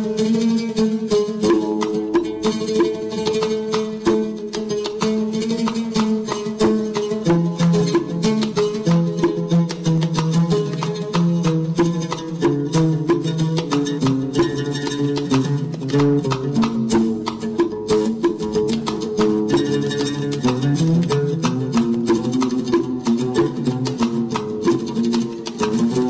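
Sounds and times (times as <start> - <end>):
percussive strikes: 0.0 - 26.0
plucked string instrument: 0.0 - 26.0.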